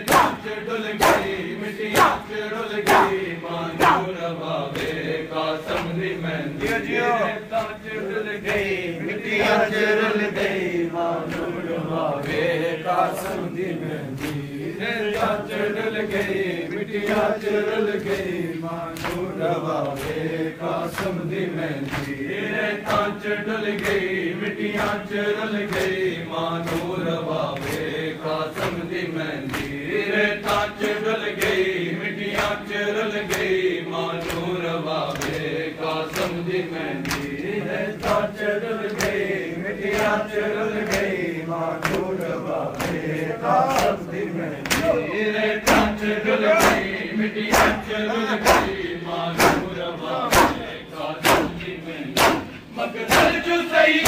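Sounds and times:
hands slapping chests: 0:00.0 - 0:05.0, 0:18.9 - 0:20.2, 0:21.8 - 0:22.2, 0:25.7 - 0:26.0, 0:33.3 - 0:33.5, 0:34.2 - 0:36.4, 0:37.0 - 0:39.3, 0:41.8 - 0:44.0, 0:44.6 - 0:45.0, 0:45.6 - 0:53.4
men chanting together: 0:00.0 - 0:54.0.

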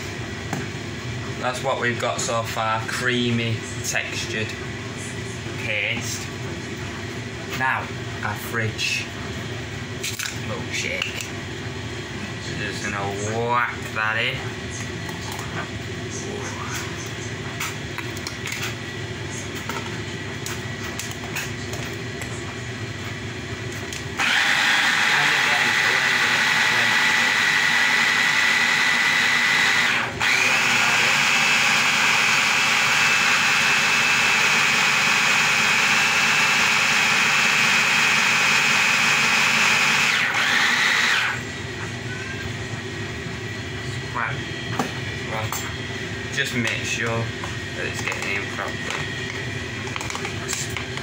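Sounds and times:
hand blender motor whine: 0:24.2 - 0:41.4.

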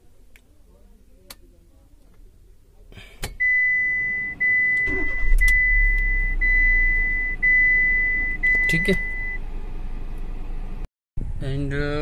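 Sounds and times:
car warning buzzer: 0:03.4 - 0:09.4.

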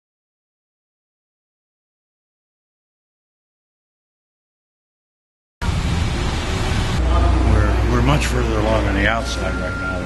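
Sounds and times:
low street rumble: 0:05.6 - 0:10.0.

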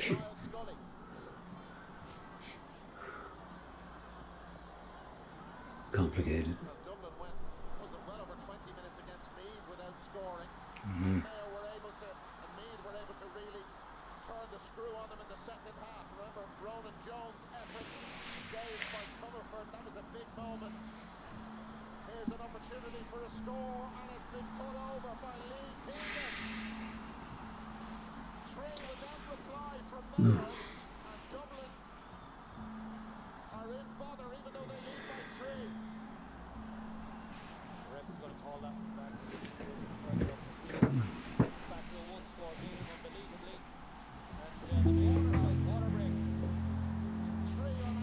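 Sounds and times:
faint sports commentator voice: 0:00.0 - 0:00.8, 0:05.8 - 0:20.9, 0:28.4 - 0:31.8, 0:44.4 - 0:48.0
breathy hiss of air: 0:17.6 - 0:19.4, 0:25.9 - 0:27.2.

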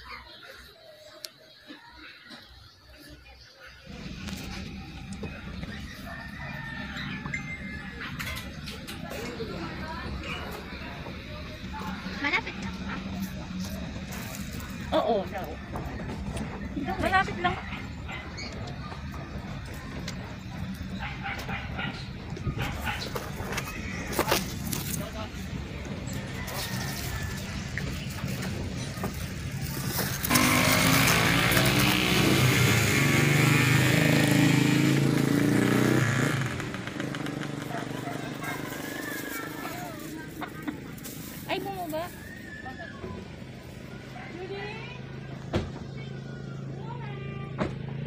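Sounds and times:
vehicle engine humming: 0:03.6 - 0:48.0.

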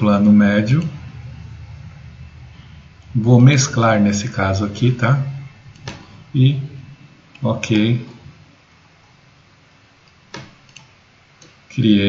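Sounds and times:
low hiss: 0:00.0 - 0:12.0
computer mouse clicking: 0:10.0 - 0:11.6.

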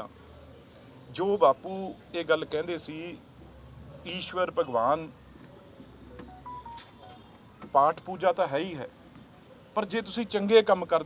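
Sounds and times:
faint electronic beeps: 0:06.1 - 0:07.5.

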